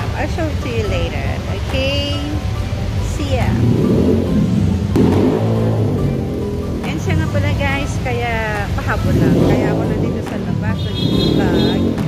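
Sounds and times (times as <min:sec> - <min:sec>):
motorcycle engine revving: 0:01.5 - 0:12.0.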